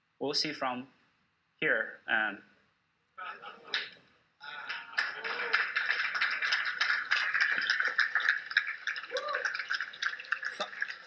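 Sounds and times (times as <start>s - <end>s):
audience applauding: 3.7s - 11.0s.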